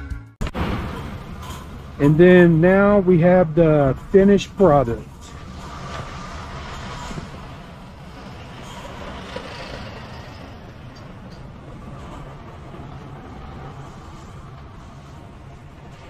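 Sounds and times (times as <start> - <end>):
low vehicle rumble: 0.4 - 16.0.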